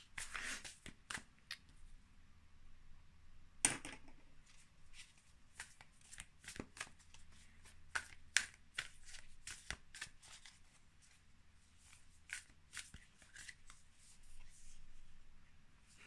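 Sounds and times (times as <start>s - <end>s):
cards being shuffled: 0.2s - 1.3s, 4.5s - 10.8s, 11.8s - 13.8s.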